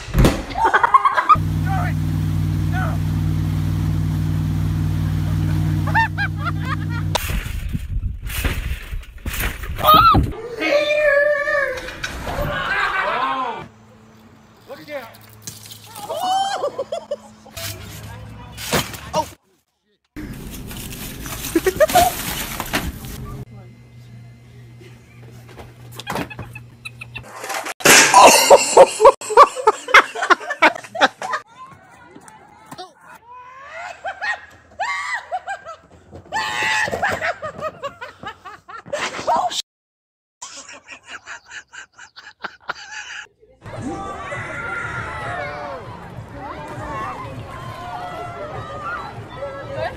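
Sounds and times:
woman shrieking and laughing: 0.5s - 1.4s, 9.8s - 11.9s, 16.0s - 17.5s, 33.2s - 39.6s, 40.5s - 43.3s
steady low hum: 1.4s - 7.9s, 20.2s - 27.2s
people yelling excitedly: 9.8s - 13.7s, 43.7s - 49.9s.

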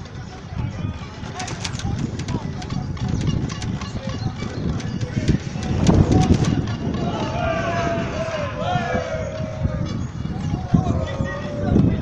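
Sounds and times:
low rumbling over bricks: 0.6s - 7.2s
irregular rattling clicks: 1.2s - 6.8s.

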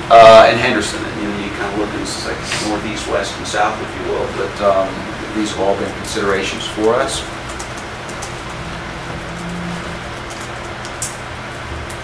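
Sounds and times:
microphone system hiss: 0.0s - 11.6s
low hum: 1.0s - 11.7s.

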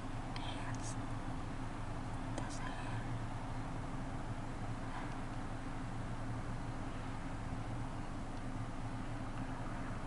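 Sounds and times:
low hum and hiss: 0.0s - 10.0s
faint whispering: 0.3s - 1.0s, 2.3s - 3.2s.

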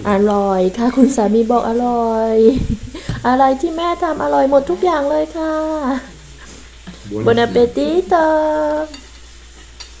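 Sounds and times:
woman speaking: 0.0s - 6.1s, 7.1s - 9.0s
low room noise: 0.0s - 10.0s.

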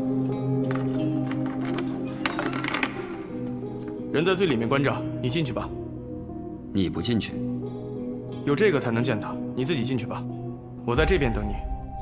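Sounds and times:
background score of low held notes: 2.7s - 12.0s.

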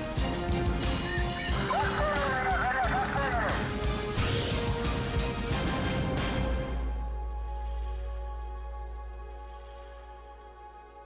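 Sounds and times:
electronic theme music: 0.0s - 7.4s.

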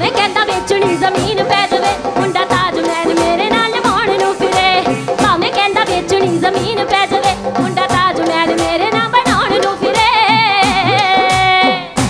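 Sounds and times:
band with drums: 0.0s - 12.0s
woman singing: 0.0s - 12.0s.

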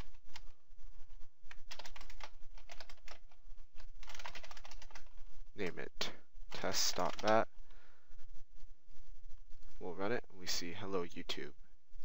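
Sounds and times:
typing on computer keyboard: 1.6s - 3.3s, 4.0s - 5.1s, 6.5s - 7.4s.

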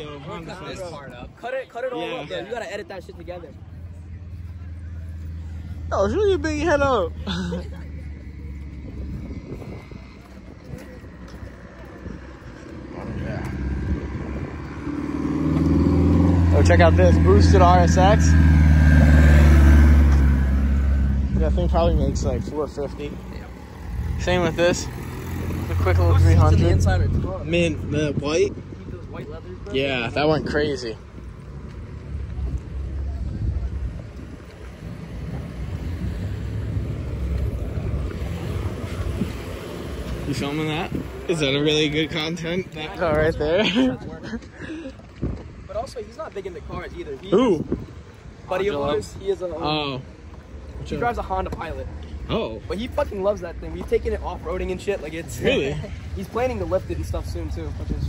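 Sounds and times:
car engine drone: 1.8s - 58.0s
wind buffeting microphone: 8.1s - 49.5s, 56.0s - 58.0s.

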